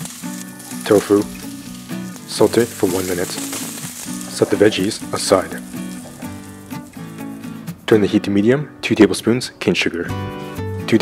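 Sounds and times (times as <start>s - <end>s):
background music with held notes: 0.0s - 11.0s
person speaking: 0.7s - 1.5s, 2.1s - 6.4s.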